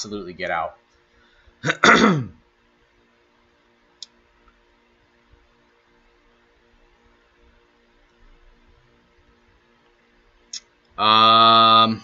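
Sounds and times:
man clearing his throat: 1.6s - 2.4s.

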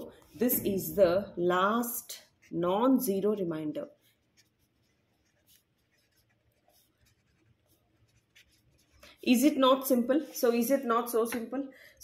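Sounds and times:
marker pen scratching on paper: 0.0s - 11.4s.

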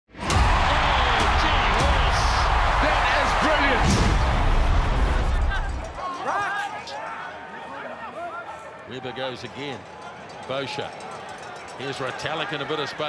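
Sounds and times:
crowd voices: 0.2s - 13.0s.

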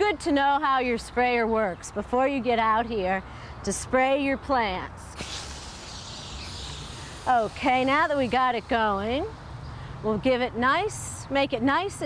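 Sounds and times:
water spraying from hose nozzle: 5.2s - 9.3s.

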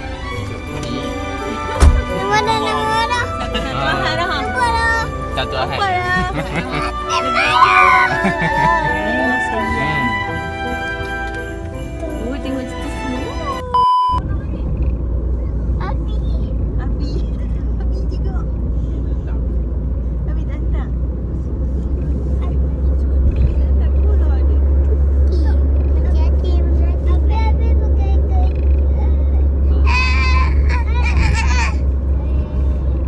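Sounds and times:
children's voices: 0.0s - 8.8s, 25.3s - 33.0s
car driving rumble: 0.0s - 33.0s
child's high-pitched voice: 2.1s - 3.4s, 4.5s - 5.1s, 7.1s - 8.2s, 15.4s - 18.5s, 25.3s - 32.9s.

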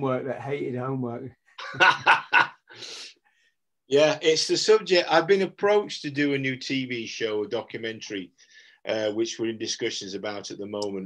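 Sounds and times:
man laughing: 1.6s - 2.7s.

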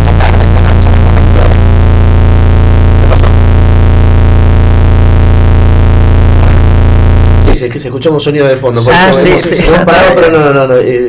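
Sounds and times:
loud electrical buzz: 0.0s - 7.7s.

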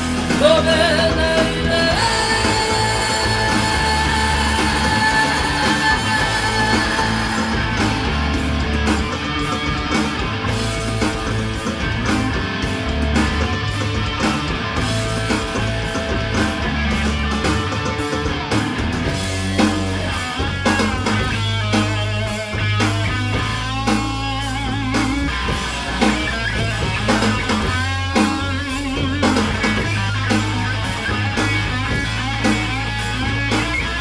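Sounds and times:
bass and drums: 0.0s - 34.0s
distorted electric guitar: 0.0s - 34.0s
person singing: 0.3s - 8.8s.

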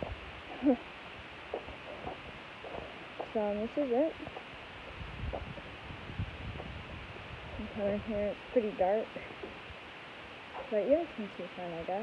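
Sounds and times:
footsteps on gravel: 1.4s - 4.5s, 5.2s - 5.7s.

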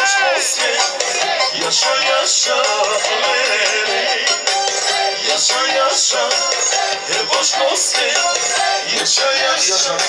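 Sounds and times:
loud amplified band music: 0.0s - 0.8s.

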